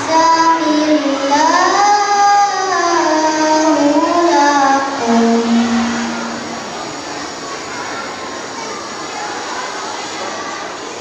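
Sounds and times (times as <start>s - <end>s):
boy reciting melodically: 0.0s - 6.8s
hall background hum: 3.0s - 7.8s.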